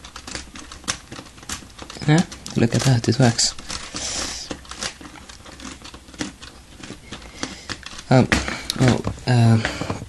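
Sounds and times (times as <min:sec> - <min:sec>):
plastic gears clicking: 0:00.0 - 0:09.0.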